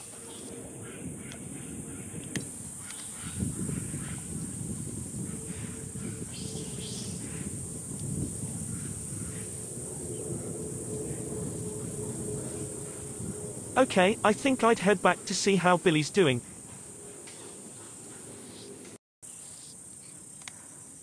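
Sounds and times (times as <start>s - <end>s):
low rumble: 3.5s - 14.6s
high hiss: 6.3s - 16.9s.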